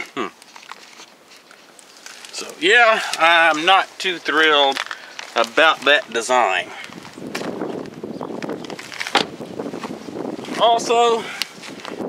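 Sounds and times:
footsteps on gravel: 0.4 - 12.0.

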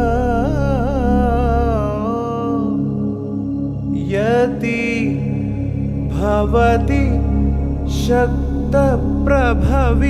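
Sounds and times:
solo voice chanting: 0.0 - 10.0
steady drone: 0.0 - 10.0.

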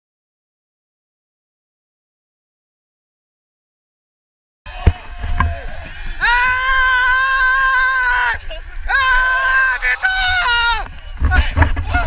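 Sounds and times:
man yelling in celebration: 6.2 - 10.9.

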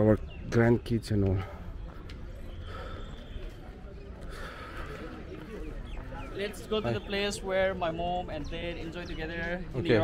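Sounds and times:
faint chatter of voices: 0.0 - 10.0.

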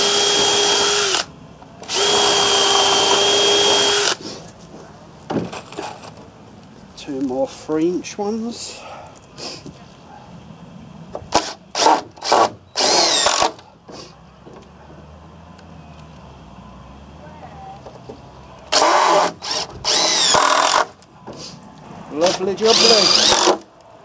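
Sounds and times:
cordless drill driving screws: 0.0 - 4.2, 11.3 - 13.6, 18.7 - 21.0, 22.3 - 23.7.

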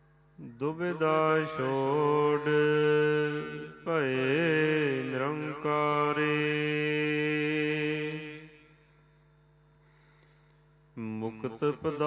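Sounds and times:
man chanting: 0.4 - 8.7, 11.0 - 12.0.

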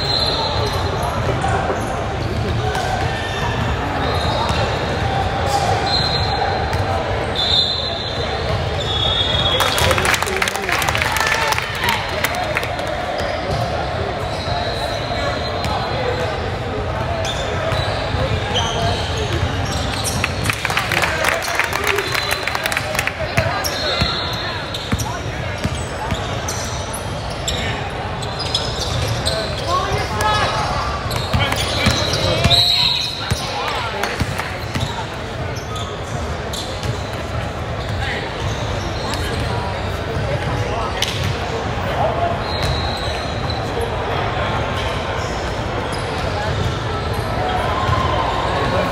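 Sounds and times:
sneaker squeaks: 0.0 - 9.9, 13.1 - 20.6, 23.4 - 48.5
murmur of voices in a hall: 0.0 - 48.9.

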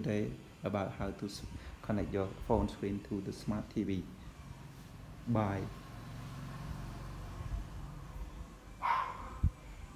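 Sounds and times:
steady low hum: 0.0 - 9.9
high-pitched yelp: 8.8 - 9.5.

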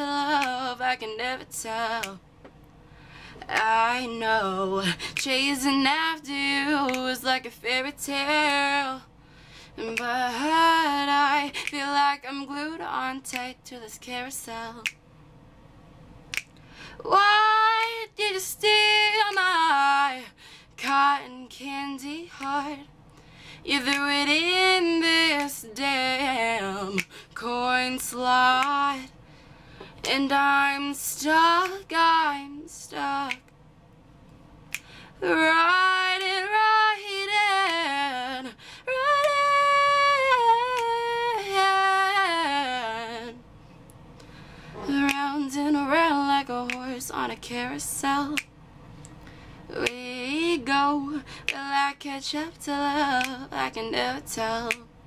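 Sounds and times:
woman singing unaccompanied: 0.0 - 2.2, 3.4 - 9.1, 9.8 - 14.9, 17.0 - 22.9, 23.6 - 29.1, 30.0 - 33.4, 35.2 - 43.4, 44.8 - 48.5, 49.7 - 54.9
finger snap: 0.0 - 2.8, 3.4 - 4.2, 4.8 - 9.0, 9.8 - 15.2, 16.2 - 29.1, 29.7 - 54.9
faint room noise: 0.0 - 55.0.

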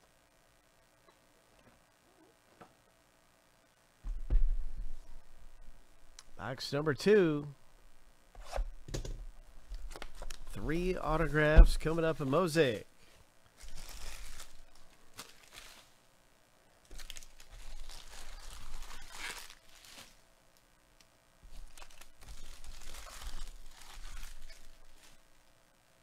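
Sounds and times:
plastic shrink wrap tearing: 13.6 - 16.0, 16.8 - 20.2, 21.5 - 25.2.

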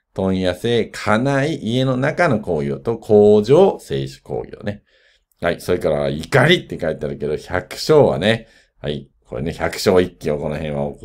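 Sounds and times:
man speaking: 0.2 - 4.8, 5.4 - 11.0.

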